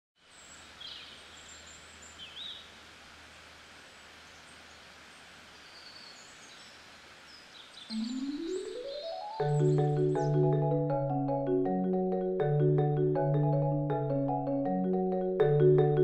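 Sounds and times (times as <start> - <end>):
high bird chirps: 7.6 - 10.5
mallet instrument music: 7.9 - 16.0.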